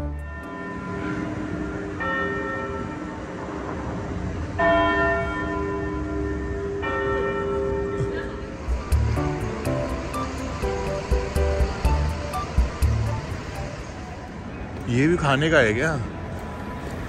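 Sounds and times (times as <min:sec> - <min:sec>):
clock tower bell tolling: 0:00.0 - 0:12.9
city traffic hum: 0:00.0 - 0:17.0.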